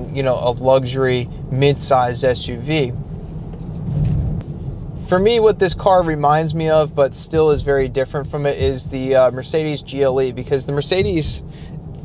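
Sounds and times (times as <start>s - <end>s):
car cabin road and drivetrain rumble: 0.0s - 12.0s.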